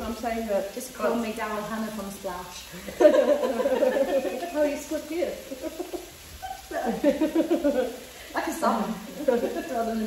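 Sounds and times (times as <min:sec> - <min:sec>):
woman laughing: 0:02.8 - 0:04.7, 0:05.4 - 0:08.2, 0:09.1 - 0:10.0.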